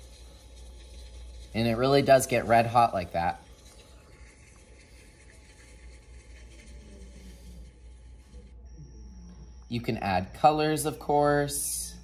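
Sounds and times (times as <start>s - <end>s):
low hum: 0.0s - 12.0s
thin high tone: 0.0s - 12.0s.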